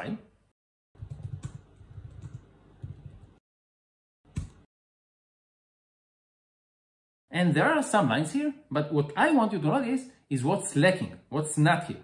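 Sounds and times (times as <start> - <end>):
computer keyboard typing: 1.0 - 3.3.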